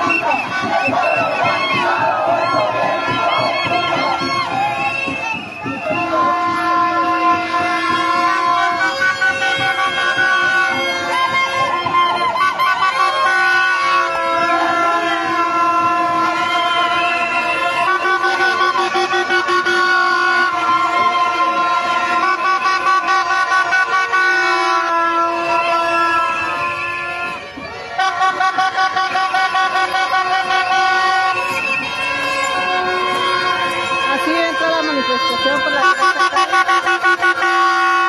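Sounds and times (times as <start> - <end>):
pulsing beat: 0.0 - 23.7
sustained horn chords: 0.0 - 38.0.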